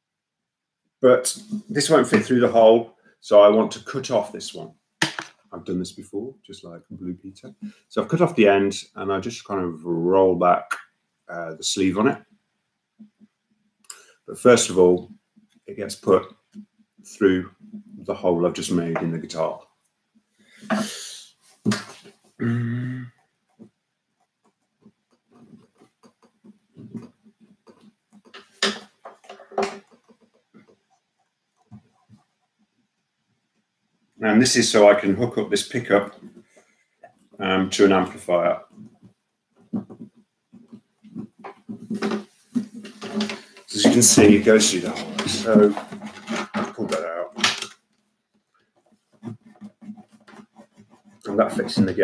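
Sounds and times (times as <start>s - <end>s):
vocal noises: 20.6s - 23.2s, 39.8s - 47.4s
cable tapping wooden guitar: 24.4s - 32.3s, 35.2s - 52.0s
cable scraping: 39.7s - 47.8s.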